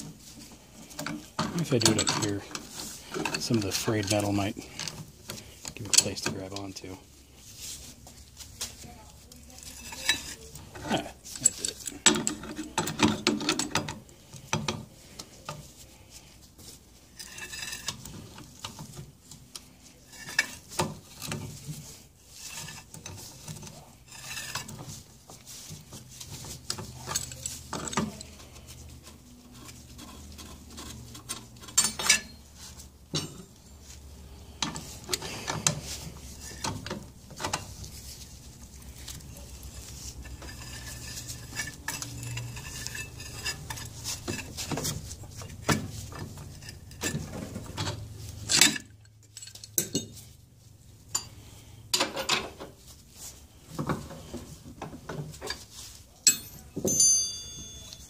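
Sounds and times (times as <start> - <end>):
pipe wrench clanking on metal: 1.0 - 5.0, 9.6 - 14.9, 30.0 - 32.4, 33.1 - 33.5, 40.2 - 44.9, 45.5 - 50.2, 56.2 - 58.0.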